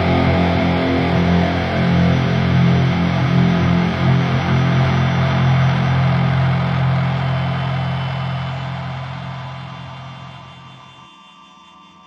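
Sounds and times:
distorted electric guitar drone: 0.0s - 11.1s.

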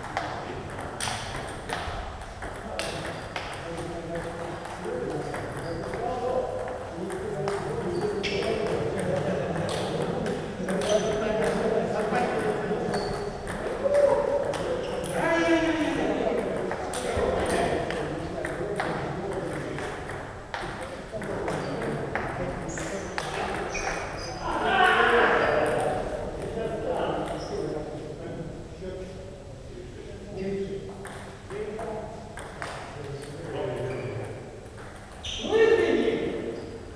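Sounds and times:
voices echoing in a hall: 0.0s - 36.9s.

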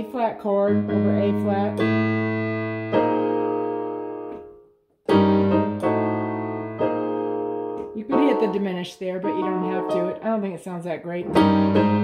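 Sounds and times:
piano chords on keyboard: 0.0s - 10.4s, 11.2s - 12.0s.

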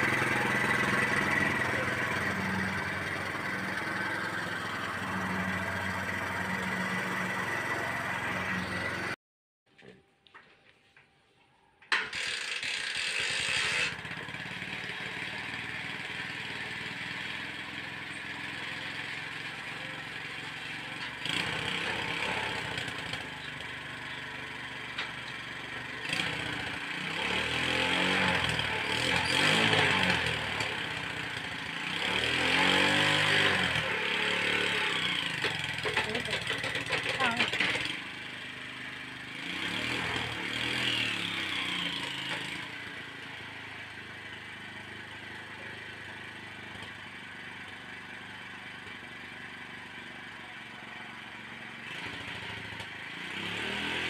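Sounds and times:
engine revving: 0.0s - 9.2s, 12.0s - 43.6s, 51.8s - 54.0s.

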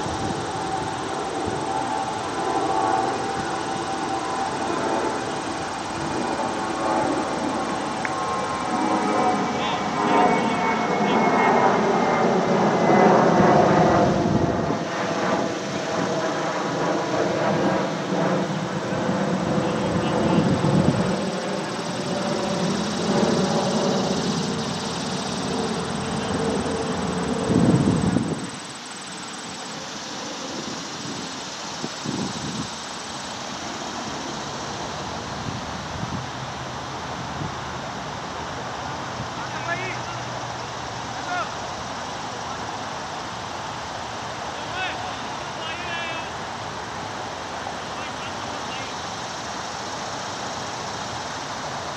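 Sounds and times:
outdoor noise: 0.0s - 51.9s.

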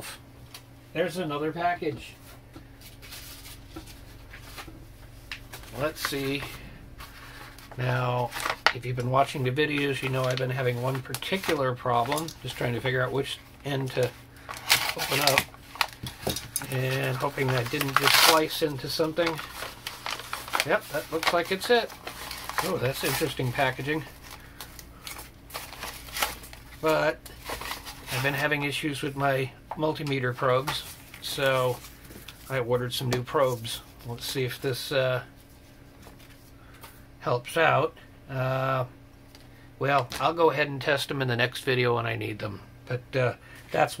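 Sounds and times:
steady low hum: 0.0s - 44.0s
package handling rustles: 2.8s - 28.7s.

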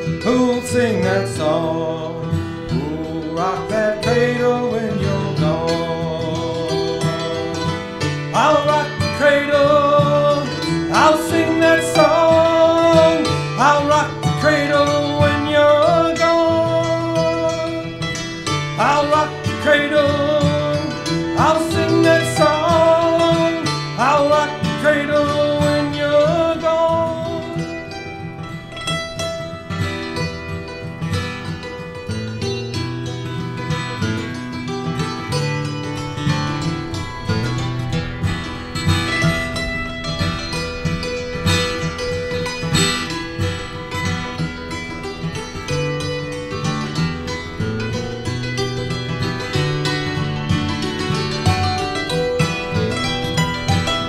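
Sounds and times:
acoustic guitar strumming: 0.0s - 54.0s
hammered dulcimer melody: 0.0s - 54.0s.

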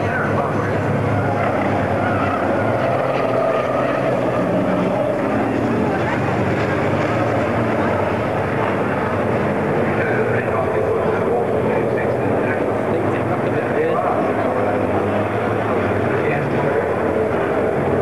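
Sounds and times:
diesel truck engines racing: 0.0s - 18.0s
voices talking: 0.0s - 18.0s.

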